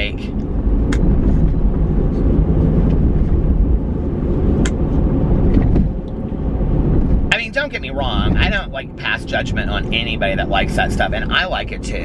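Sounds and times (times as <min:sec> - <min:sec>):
road and engine rumble: 0:00.0 - 0:12.0.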